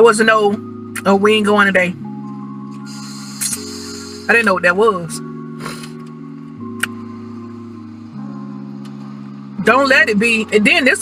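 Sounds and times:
soft background music chords: 0.0s - 11.0s.

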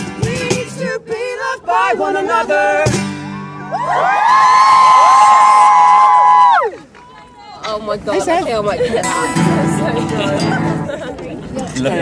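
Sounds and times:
crowd screaming and cheering: 3.4s - 7.6s.

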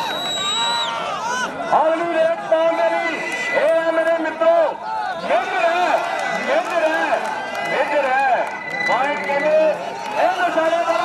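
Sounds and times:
man commentating excitedly: 1.6s - 11.0s.

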